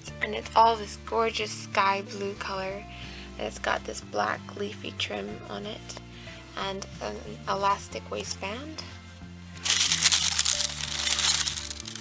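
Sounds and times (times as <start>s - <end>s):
background music: 0.0s - 12.0s
tissue paper crinkling: 9.6s - 12.0s.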